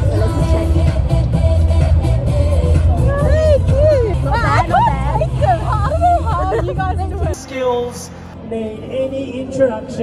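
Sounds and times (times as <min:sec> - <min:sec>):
women chatting and laughing: 0:02.8 - 0:07.4.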